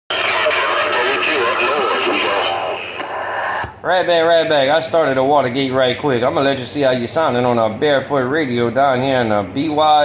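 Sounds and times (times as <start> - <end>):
man talking: 0.1 - 2.8, 3.8 - 10.0
voice over radio speaker: 0.1 - 3.7
radio click: 0.1 - 3.8
radio static: 0.1 - 3.8.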